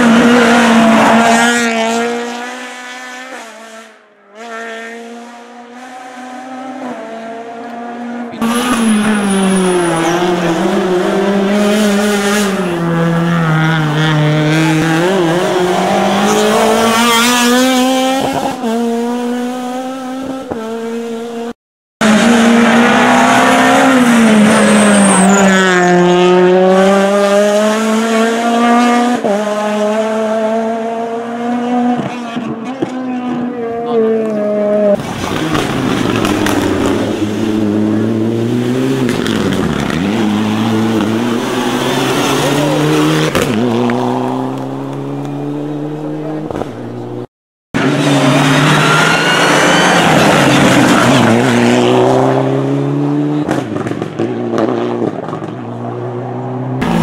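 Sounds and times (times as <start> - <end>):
rally car engines revving: 0.0 - 57.0.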